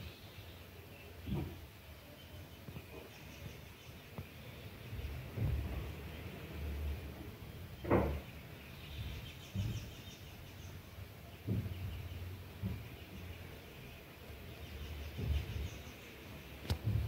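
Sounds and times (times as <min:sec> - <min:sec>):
birds chirping faintly: 0:00.0 - 0:17.0
low rumbles and thumps: 0:01.2 - 0:01.9, 0:02.6 - 0:17.0.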